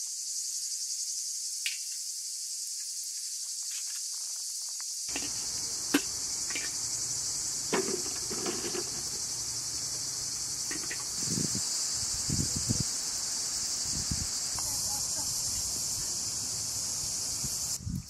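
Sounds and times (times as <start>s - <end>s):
insects chirping: 0.0s - 18.0s.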